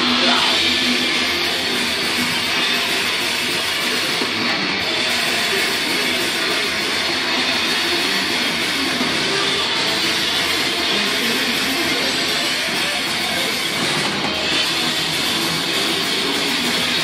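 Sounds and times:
heavy metal band playing live: 0.0 - 17.0.

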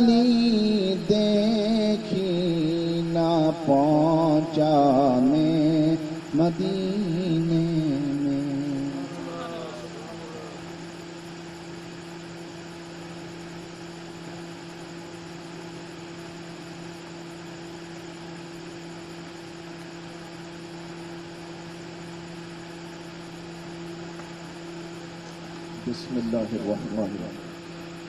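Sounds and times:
low machine hum: 0.0 - 28.0.

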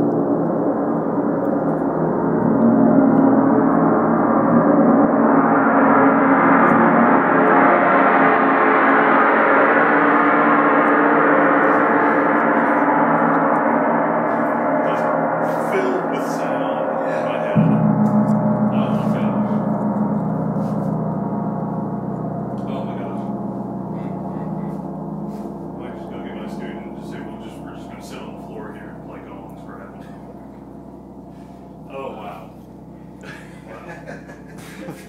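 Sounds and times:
gong struck with soft mallet: 2.1 - 33.8.

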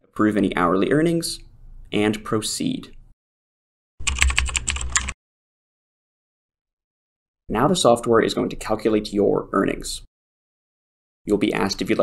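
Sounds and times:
rapid keyboard typing: 4.0 - 5.2.

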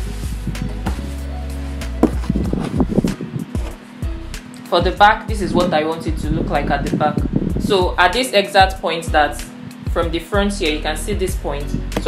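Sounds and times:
background music with held chords: 0.0 - 12.0
fabric rustling on a table: 1.9 - 3.8.

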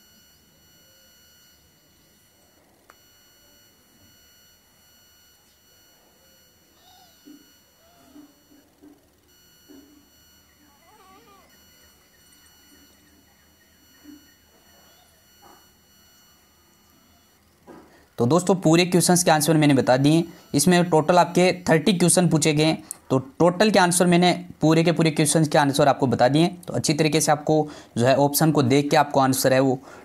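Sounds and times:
faint wavering cries: 0.0 - 17.6
high electronic whine: 0.0 - 22.6.

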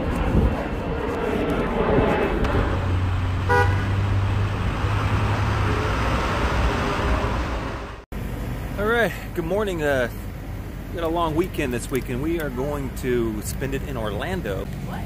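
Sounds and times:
traffic rumble: 0.0 - 15.0
car horn toot: 3.5 - 4.0.

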